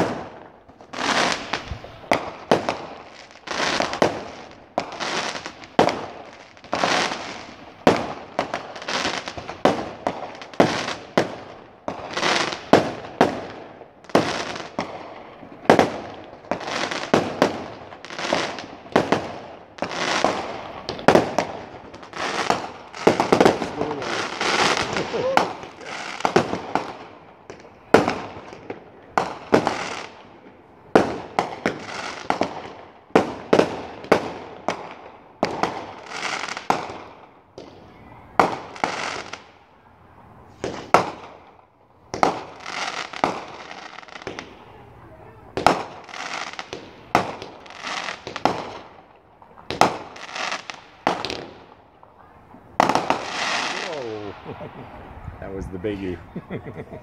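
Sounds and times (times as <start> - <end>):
fireworks bangs: 0.0 - 39.6, 40.4 - 57.0.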